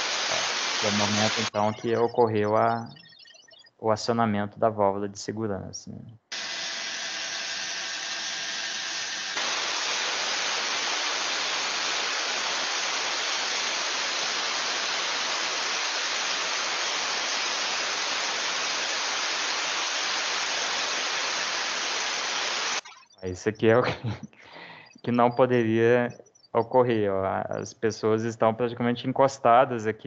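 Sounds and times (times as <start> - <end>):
safety valve blowing off steam: 0.0 - 1.7, 6.3 - 22.8.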